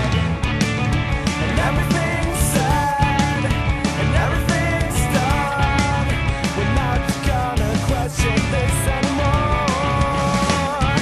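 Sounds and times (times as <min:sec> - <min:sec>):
guitar: 0:00.0 - 0:11.0
steady drum beat: 0:00.0 - 0:11.0.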